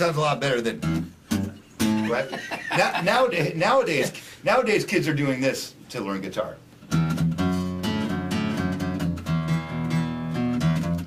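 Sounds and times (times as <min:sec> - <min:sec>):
acoustic guitar riff: 0:00.1 - 0:04.4, 0:06.8 - 0:11.0.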